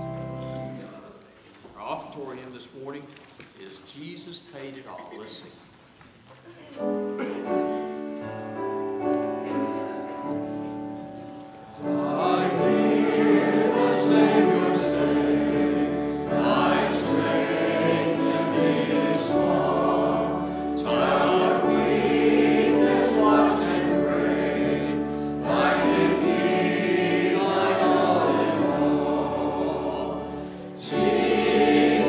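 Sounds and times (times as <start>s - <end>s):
congregation singing a hymn: 7.0s - 32.0s.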